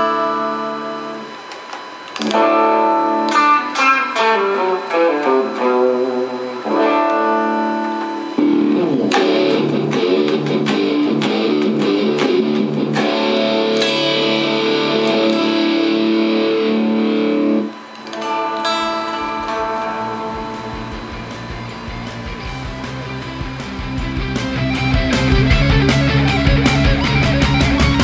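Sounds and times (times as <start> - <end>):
clean electric guitar with delay: 0.0 - 1.4, 2.2 - 28.0
distorted electric guitar chords: 0.0 - 28.0.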